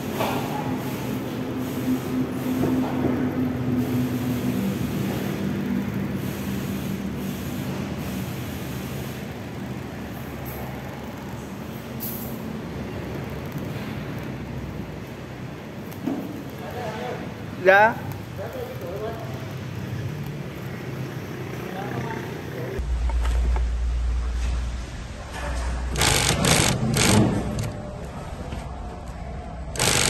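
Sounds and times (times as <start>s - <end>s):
machine rumble with low hum: 22.8s - 30.0s.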